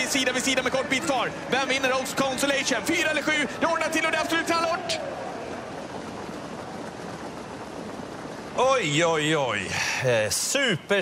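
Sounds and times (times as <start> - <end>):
outdoor racetrack ambience: 0.0 - 11.0.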